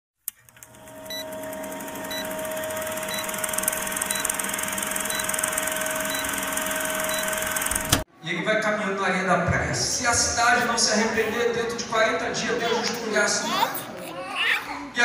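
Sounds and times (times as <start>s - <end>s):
film projector whirr: 0.3s - 8.0s.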